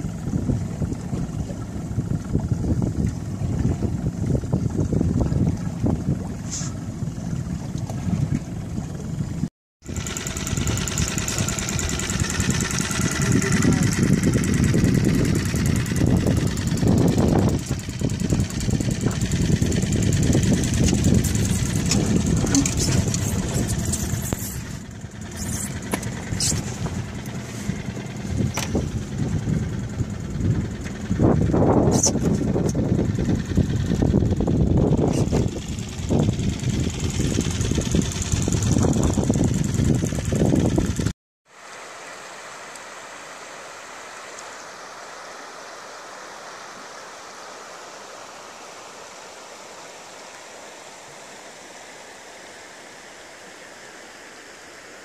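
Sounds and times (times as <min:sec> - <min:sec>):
wind buffeting microphone: 0:00.0 - 0:41.1
motorboat engine running: 0:00.0 - 0:55.0.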